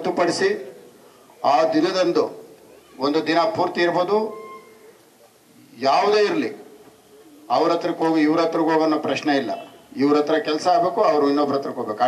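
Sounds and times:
man speaking: 0.0s - 0.8s, 1.4s - 4.4s, 5.7s - 6.7s, 7.5s - 12.0s.

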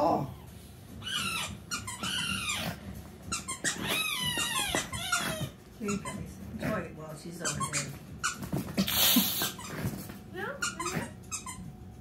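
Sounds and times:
squeaky dog toy squeaking: 0.9s - 6.6s, 7.3s - 8.8s, 9.4s - 12.0s.

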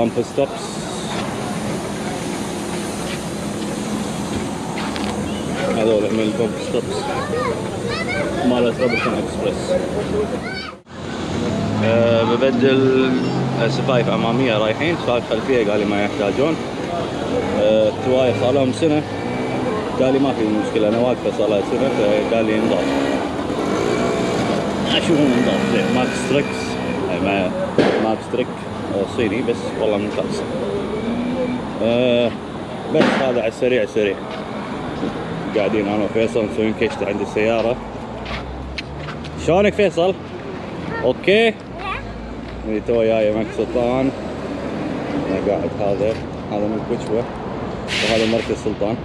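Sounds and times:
faint talk: 5.5s - 10.8s.

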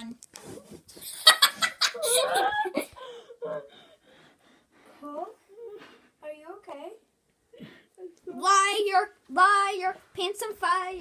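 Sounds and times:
children laughing: 1.1s - 3.7s.

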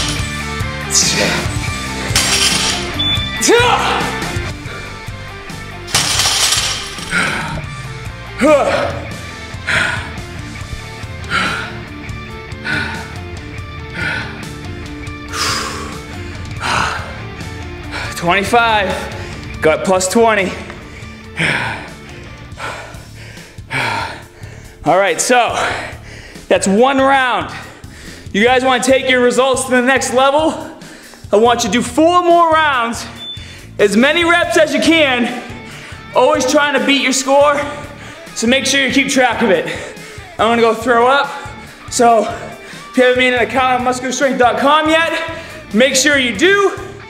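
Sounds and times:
background music with a beat: 0.0s - 18.0s
background music: 0.0s - 47.0s
barbell plates crashing down: 2.1s - 3.0s, 5.9s - 7.4s
man breathing hard: 4.5s - 5.4s, 9.2s - 18.2s, 19.1s - 19.5s, 20.6s - 24.8s, 25.5s - 26.5s, 27.5s - 28.3s, 30.7s - 31.3s, 33.2s - 33.8s, 35.5s - 36.1s, 37.9s - 38.4s, 39.7s - 40.4s, 41.4s - 42.9s, 45.3s - 45.7s.

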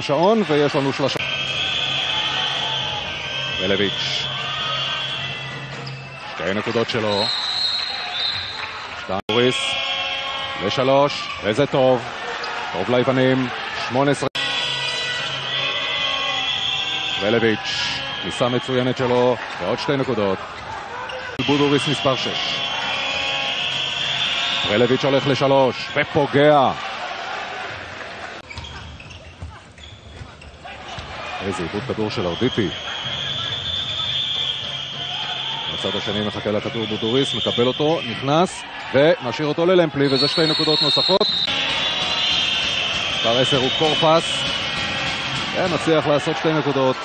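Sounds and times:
arena crowd noise: 0.0s - 47.0s
commentator's voice: 3.6s - 4.3s, 17.2s - 20.4s, 21.3s - 22.6s, 24.6s - 26.8s, 35.7s - 41.4s, 43.2s - 44.4s, 45.5s - 47.0s
basketball bouncing on court: 41.5s - 45.8s.

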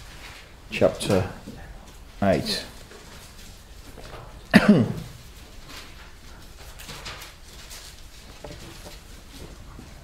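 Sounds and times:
man coughing: 4.5s - 5.2s.

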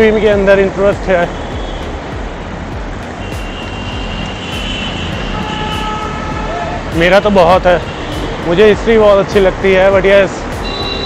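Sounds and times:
motor traffic: 0.0s - 11.0s.

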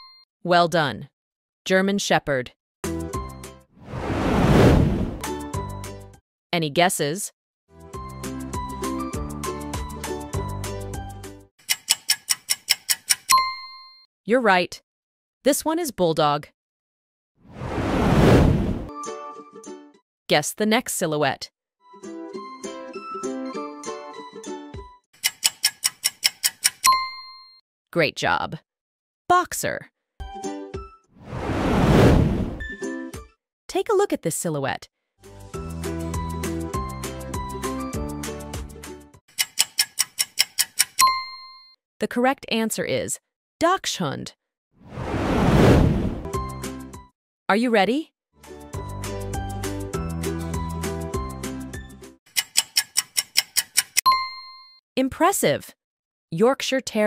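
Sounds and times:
bell ding: 0.0s - 0.2s, 13.3s - 14.0s, 26.8s - 27.6s, 41.0s - 41.8s, 54.1s - 54.8s
rapid clock ticking: 11.6s - 13.4s, 25.2s - 26.9s, 39.3s - 41.1s, 52.3s - 54.0s.

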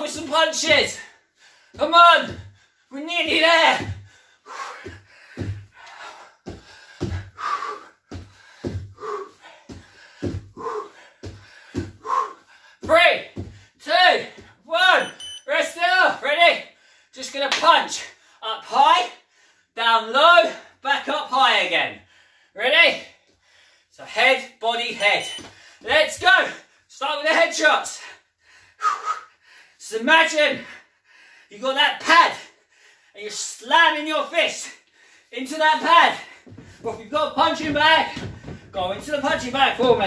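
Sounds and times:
man grunting and breathing hard: 3.9s - 12.8s
bare feet landing on wooden floor: 4.8s - 7.5s, 8.1s - 12.2s, 36.1s - 40.0s.

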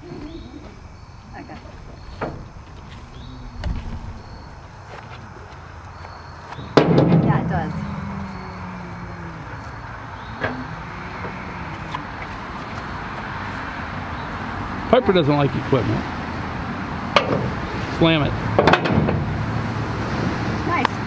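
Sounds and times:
metal door slamming: 1.7s - 5.0s, 6.7s - 7.9s, 18.6s - 19.4s
metal knock: 6.8s - 7.6s.

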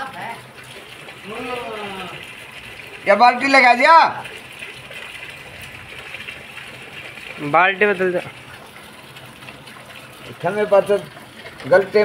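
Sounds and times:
rain falling on standing water: 0.0s - 12.0s.

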